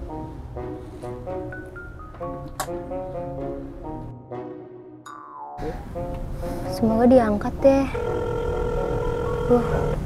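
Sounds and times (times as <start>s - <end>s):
telephone ringback tone: 7.9s - 10.0s.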